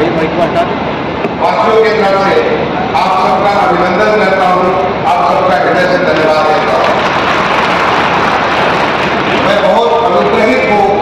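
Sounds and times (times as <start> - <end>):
audience applauding: 6.2 - 9.8.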